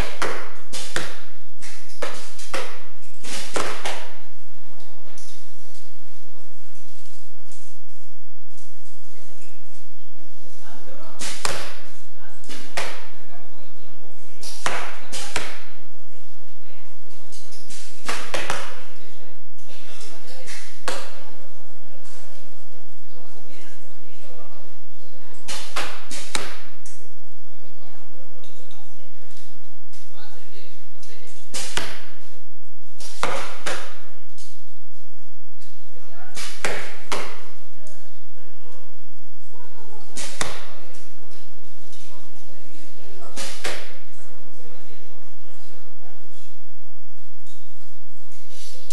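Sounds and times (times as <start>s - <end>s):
arrows shot from bows: 0.0s - 4.2s, 11.2s - 13.2s, 17.3s - 19.0s, 25.5s - 27.0s, 31.4s - 32.3s, 33.0s - 34.6s, 36.3s - 37.6s, 40.0s - 42.1s, 43.2s - 44.1s.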